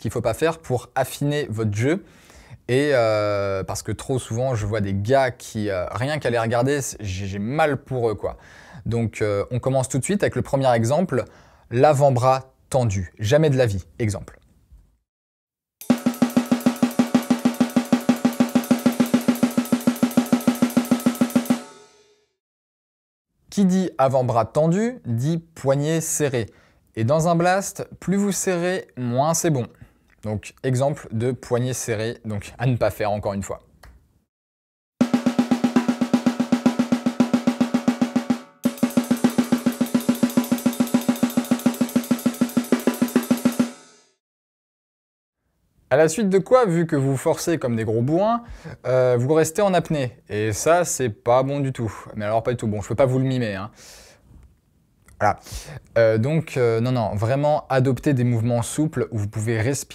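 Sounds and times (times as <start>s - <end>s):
drum kit blast beat: 15.8s - 22.1s, 35.0s - 44.2s.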